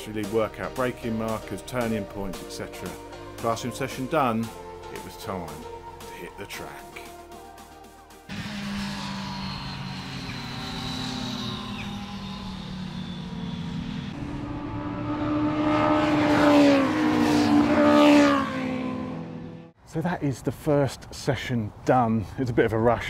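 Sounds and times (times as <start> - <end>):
sport motorcycles passing: 8.3 - 19.8.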